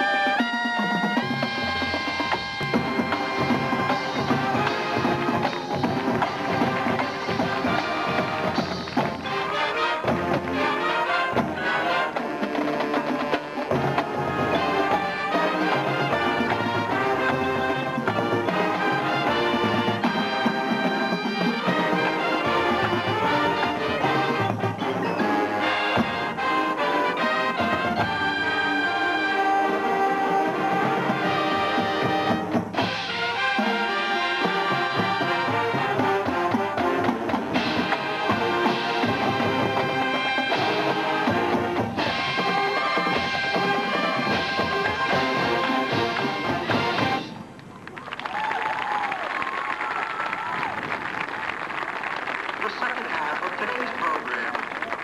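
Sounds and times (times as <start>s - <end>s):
mallet percussion: 0.0s - 28.4s
brass band playing: 0.0s - 47.6s
drumline: 0.0s - 55.0s.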